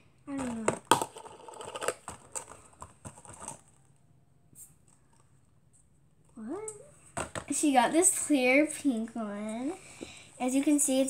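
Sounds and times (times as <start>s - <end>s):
plastic containers clicking and knocking: 0.4s - 3.7s, 7.1s - 7.6s.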